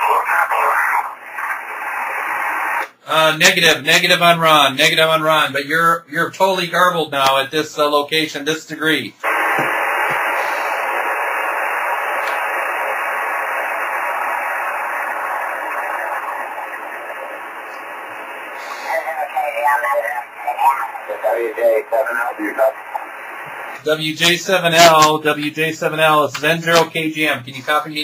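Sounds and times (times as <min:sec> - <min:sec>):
distorted radio voice: 0:00.0 - 0:01.8, 0:14.0 - 0:28.0
radio speaker hiss: 0:00.0 - 0:04.3, 0:09.2 - 0:28.0.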